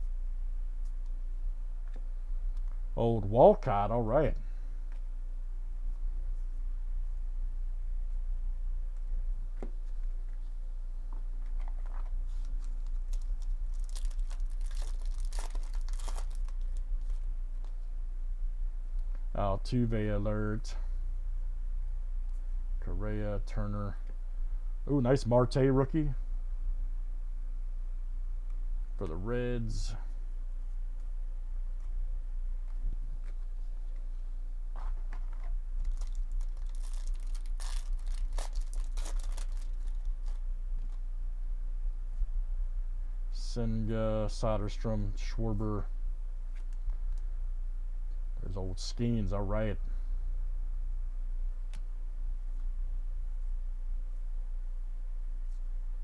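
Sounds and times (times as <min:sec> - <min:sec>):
low electrical hum: 0:00.0 - 0:56.0
foil wrapper crinkling: 0:11.4 - 0:17.8, 0:34.8 - 0:41.0.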